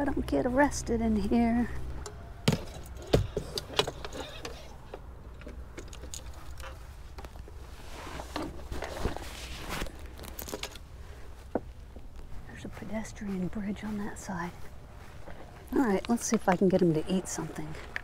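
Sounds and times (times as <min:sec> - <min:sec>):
rustling: 0:02.6 - 0:12.6.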